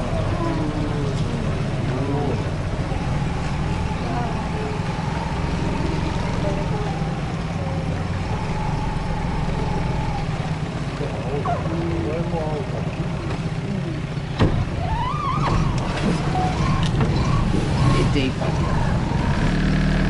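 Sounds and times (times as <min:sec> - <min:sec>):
outboard motor running: 0:00.0 - 0:20.0.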